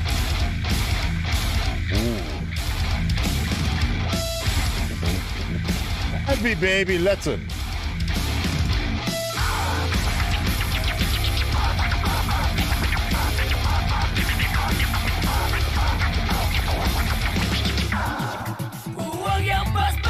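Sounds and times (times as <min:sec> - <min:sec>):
heavy metal band playing: 0:00.0 - 0:18.2.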